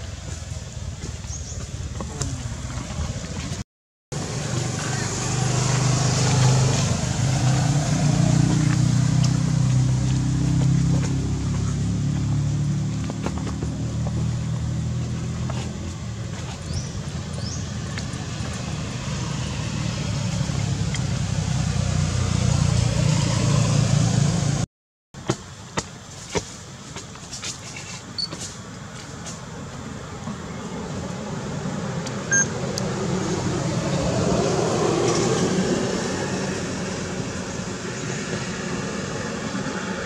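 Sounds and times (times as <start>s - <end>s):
low engine rumble: 0.0s - 23.0s.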